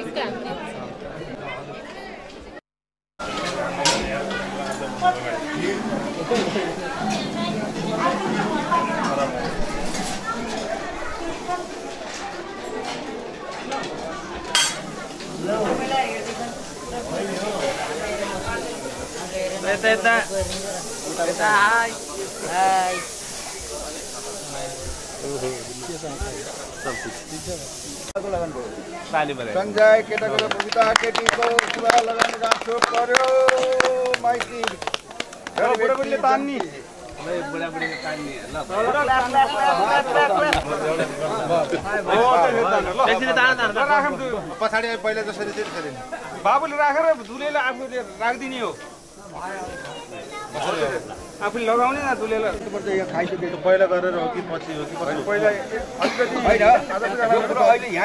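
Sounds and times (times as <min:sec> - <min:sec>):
crowd voices talking: 0:00.0 - 0:02.6, 0:03.2 - 0:58.0
background hiss: 0:03.2 - 0:58.0.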